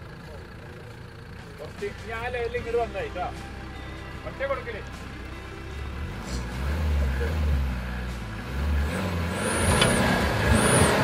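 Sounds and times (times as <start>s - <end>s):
car engine revving: 1.8s - 11.0s.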